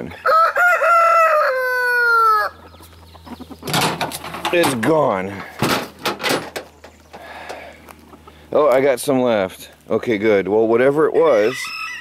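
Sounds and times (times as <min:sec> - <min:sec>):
rooster crowing: 0:00.0 - 0:02.6, 0:11.2 - 0:12.0.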